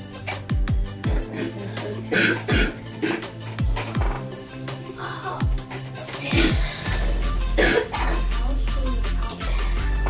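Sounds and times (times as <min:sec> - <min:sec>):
background music with deep bass: 0:00.0 - 0:10.0
person coughing: 0:00.2 - 0:03.5, 0:05.3 - 0:08.5.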